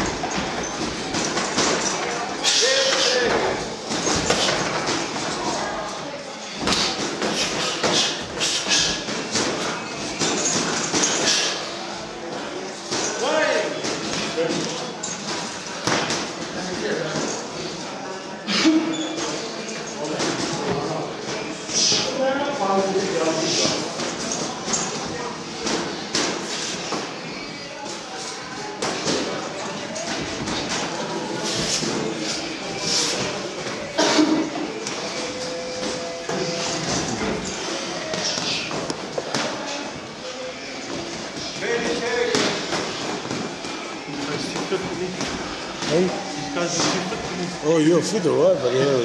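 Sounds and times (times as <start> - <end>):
voices talking: 0.0 - 49.0.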